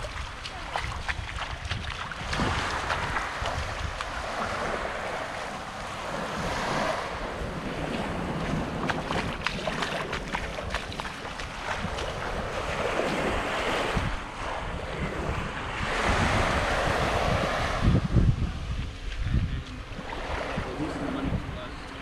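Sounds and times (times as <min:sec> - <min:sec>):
small waves washing on sand: 0:00.0 - 0:22.0
wind buffeting microphone: 0:00.0 - 0:22.0.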